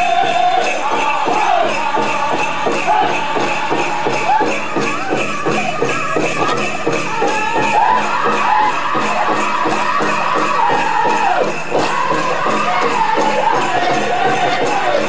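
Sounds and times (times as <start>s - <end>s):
drum group singing: 0.0s - 15.0s
jingling bells: 0.0s - 15.0s
quick steady drumbeat: 0.0s - 15.0s.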